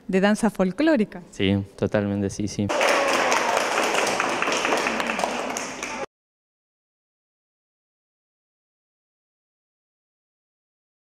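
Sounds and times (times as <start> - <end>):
children clapping: 2.7 - 6.1.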